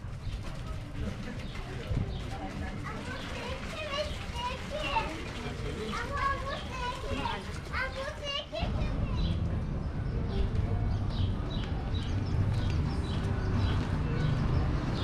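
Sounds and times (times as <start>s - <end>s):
children chattering: 0.0s - 15.0s
indistinct voices of passers-by: 0.0s - 15.0s.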